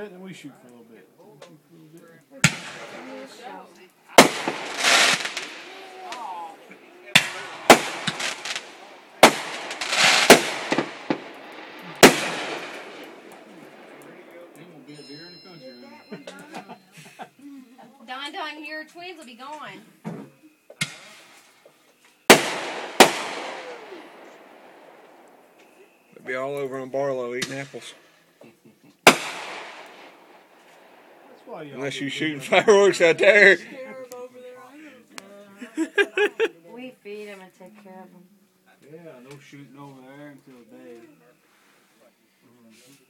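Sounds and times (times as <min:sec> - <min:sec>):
fireworks crackling: 0:02.0 - 0:16.5, 0:20.8 - 0:37.2
fireworks bangs: 0:02.4 - 0:16.5, 0:22.2 - 0:26.2, 0:29.0 - 0:33.6.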